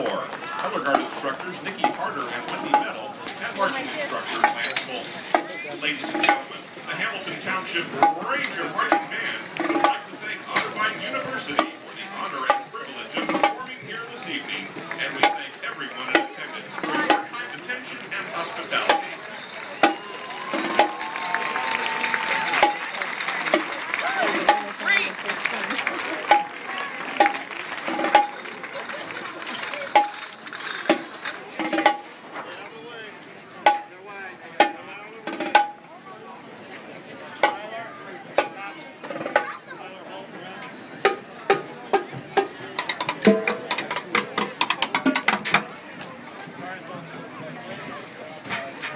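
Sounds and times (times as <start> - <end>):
marching band drum cadence: 0.0 - 6.6, 7.3 - 17.5, 18.1 - 32.2, 34.6 - 35.9, 41.0 - 45.8
stadium crowd talking: 0.0 - 48.9.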